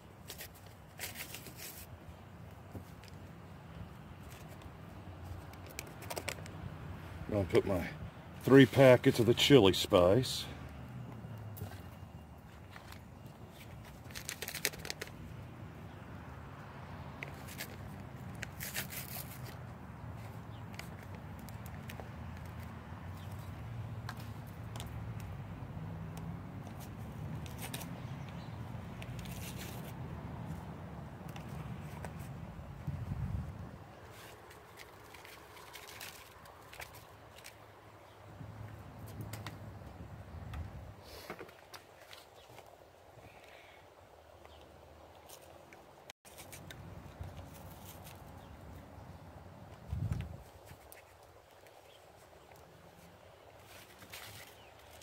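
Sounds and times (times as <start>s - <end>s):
paper packets tearing and crinkling: 0.2s - 1.9s, 5.3s - 6.5s, 13.6s - 15.2s, 18.4s - 19.6s, 34.1s - 37.6s.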